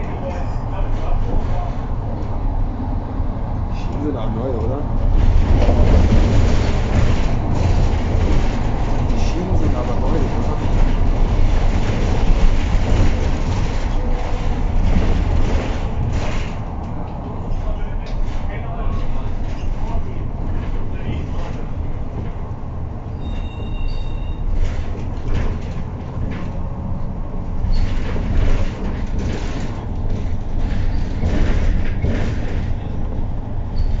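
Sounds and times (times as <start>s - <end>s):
bus engine and road rumble: 0.0s - 34.0s
rattling and knocking of bus body: 0.0s - 34.0s.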